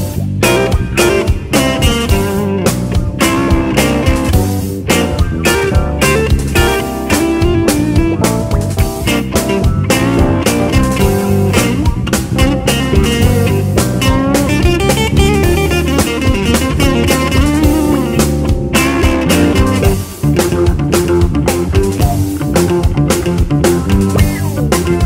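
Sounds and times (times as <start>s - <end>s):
bass guitar: 0.0s - 25.0s
drum beat: 0.0s - 25.0s
electric guitar: 0.0s - 25.0s
organ: 0.0s - 25.0s.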